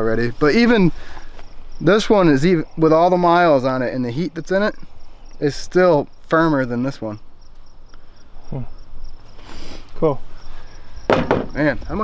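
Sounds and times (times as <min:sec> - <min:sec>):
insects chirping: 0:00.0 - 0:12.0.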